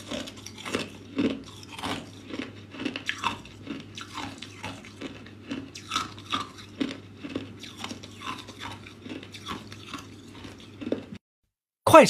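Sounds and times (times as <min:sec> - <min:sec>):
ice cubes crunched by teeth: 0:00.0 - 0:11.0.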